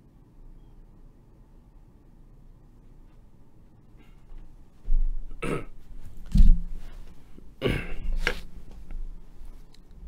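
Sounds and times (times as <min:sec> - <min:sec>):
person burping or coughing: 0:05.4 - 0:05.8, 0:07.6 - 0:08.2.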